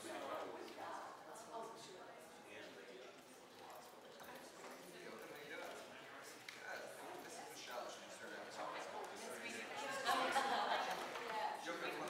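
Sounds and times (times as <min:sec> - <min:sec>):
background conversation: 0:00.0 - 0:12.0.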